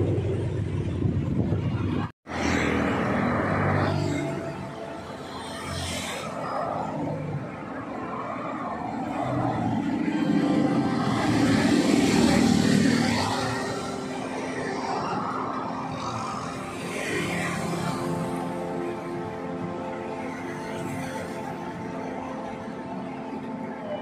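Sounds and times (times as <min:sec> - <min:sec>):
road traffic passing: 0:00.0 - 0:24.0
background music: 0:02.3 - 0:24.0.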